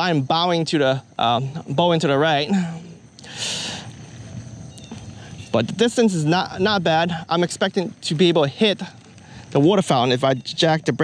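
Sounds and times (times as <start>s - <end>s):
faint low background noise: 0.0s - 11.0s.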